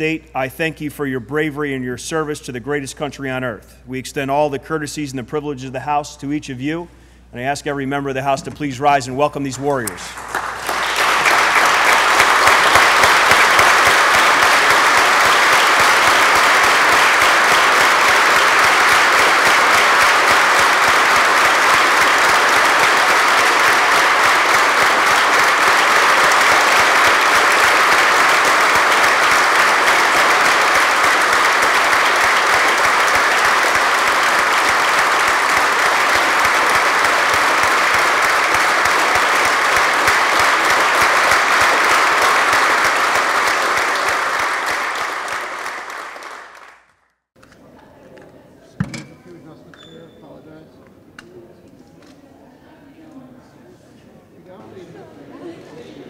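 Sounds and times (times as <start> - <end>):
crowd applauding: 9.7 - 47.0.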